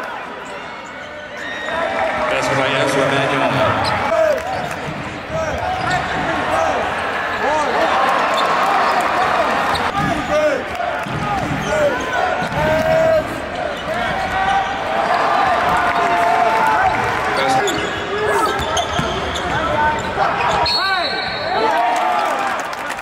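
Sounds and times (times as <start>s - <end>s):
crowd chatter: 0.0s - 23.0s
sneakers squeaking on court: 3.7s - 6.4s, 11.1s - 14.8s, 17.4s - 21.5s
basketball bouncing: 11.0s - 13.2s, 18.6s - 19.7s.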